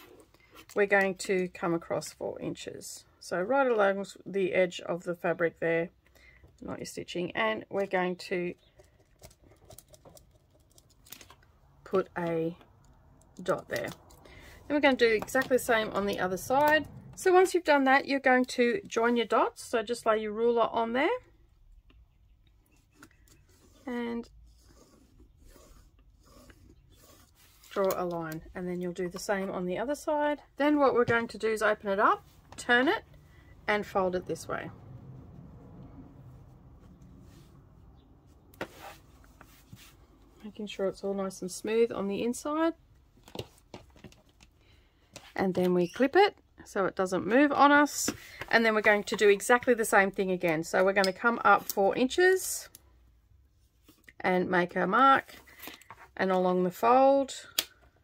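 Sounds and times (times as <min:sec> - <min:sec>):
pen scratching on fabric: 0:23.4 - 0:27.8.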